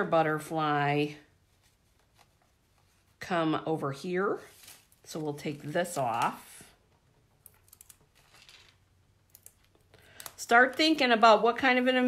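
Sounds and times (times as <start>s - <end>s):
paper handling: 4.4s - 6.4s.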